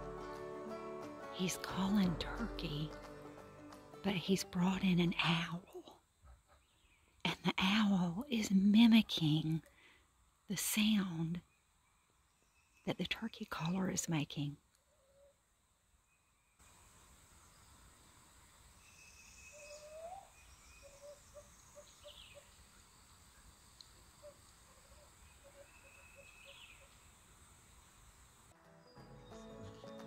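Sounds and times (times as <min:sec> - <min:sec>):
owl calling: 0:18.8 - 0:22.6, 0:24.2 - 0:27.0.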